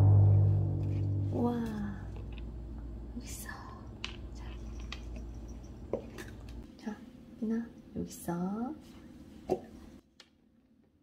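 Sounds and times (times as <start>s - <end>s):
low steady hum: 0.0s - 10.0s
person whispering: 3.2s - 4.8s.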